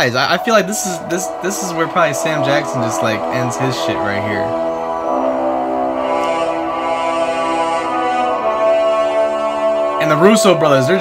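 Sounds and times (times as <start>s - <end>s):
orchestral sustained chord: 0.0s - 11.0s.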